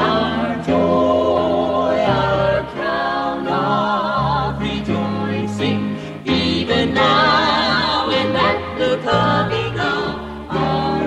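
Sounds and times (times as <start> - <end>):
keyboards: 0.0 - 11.0
mixed voices singing in harmony: 0.0 - 11.0.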